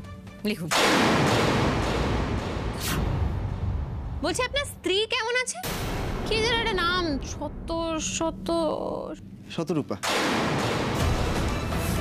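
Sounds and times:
dramatic background music: 0:00.0 - 0:04.9, 0:05.6 - 0:12.0
boom and whoosh impact effect: 0:00.7 - 0:04.2, 0:05.6 - 0:06.6, 0:10.0 - 0:11.5.

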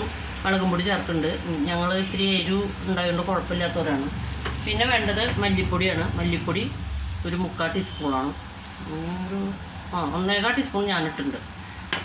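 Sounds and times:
onions frying in oil: 0:00.0 - 0:12.0.

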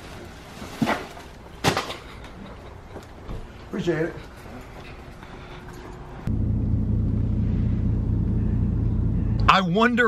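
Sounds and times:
engine rumble inside vehicle: 0:06.2 - 0:10.0.

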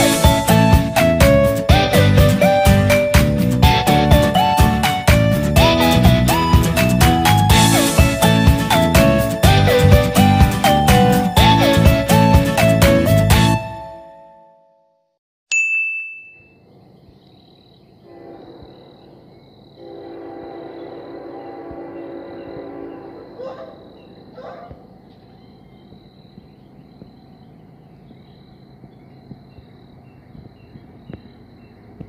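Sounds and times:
bright chime: 0:15.5 - 0:16.6
high insect drone: 0:16.6 - 0:32.0.

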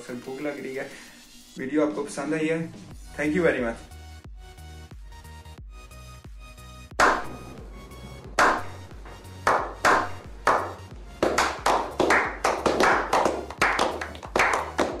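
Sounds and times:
background music: 0:00.0 - 0:15.0
people slow clapping: 0:08.4 - 0:08.7, 0:09.4 - 0:15.0.

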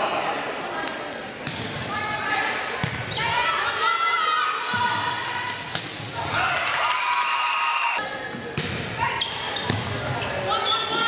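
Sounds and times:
players shouting and calling: 0:01.7 - 0:11.0.

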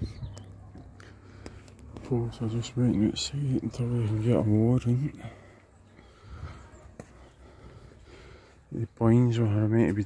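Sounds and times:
faint footsteps on pavement: 0:00.0 - 0:10.0.

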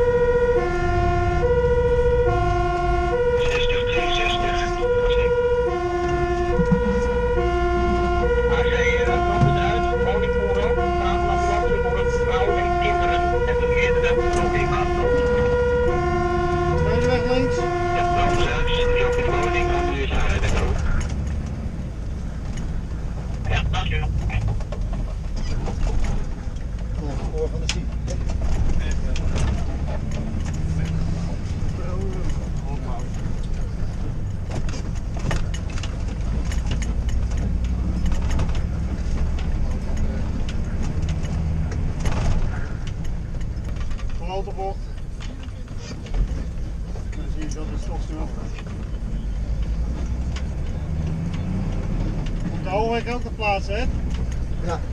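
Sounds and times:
fire engine two-tone siren: 0:00.0 - 0:20.8
truck engine rumble: 0:00.0 - 0:54.9.

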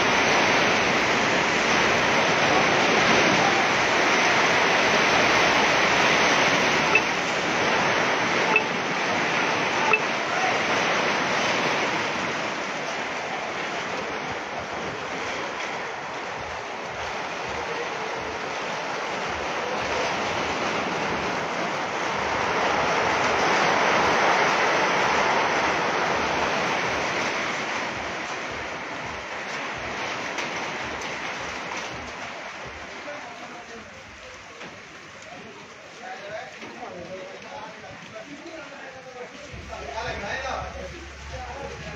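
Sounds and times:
rain and hail on metal roofs: 0:00.0 - 0:41.9.

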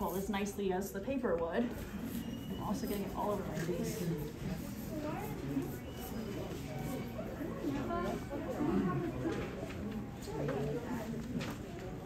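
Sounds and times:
indistinct talking: 0:01.0 - 0:12.0.

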